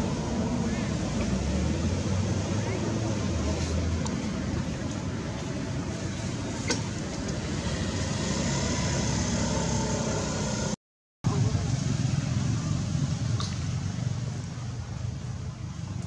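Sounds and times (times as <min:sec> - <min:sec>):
low rumbling outdoor background noise: 0:00.0 - 0:16.0.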